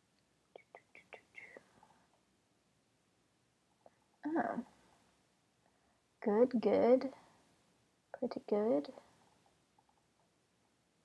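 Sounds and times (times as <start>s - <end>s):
woman whispering: 0.6s - 1.7s, 4.2s - 4.7s
woman murmuring: 4.2s - 4.6s.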